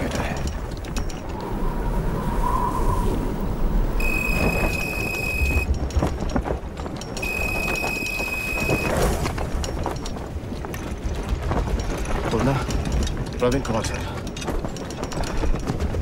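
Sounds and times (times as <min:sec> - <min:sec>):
constant low rumble: 0:00.0 - 0:16.0
telephone ringing: 0:04.0 - 0:05.7, 0:07.2 - 0:09.0.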